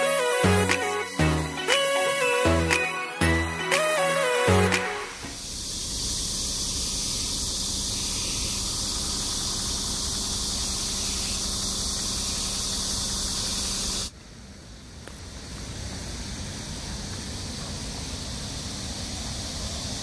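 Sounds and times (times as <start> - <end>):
cicadas buzzing: 0.0 - 2.5, 5.2 - 20.0.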